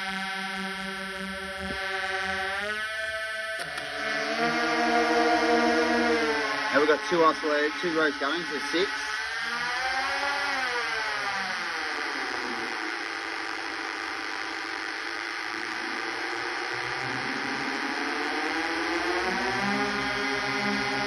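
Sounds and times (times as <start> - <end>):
synth drone: 0.0 - 21.0.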